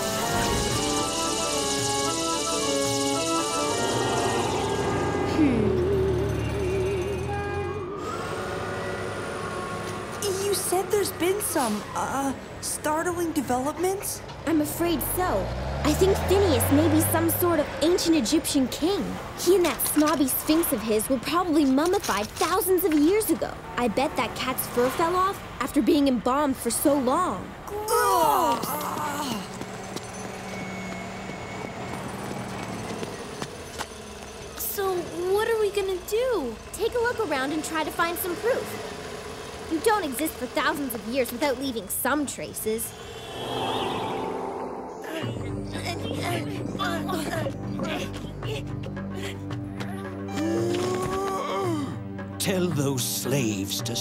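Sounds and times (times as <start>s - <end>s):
warbling wavering sound effect: 42.9s - 45.9s.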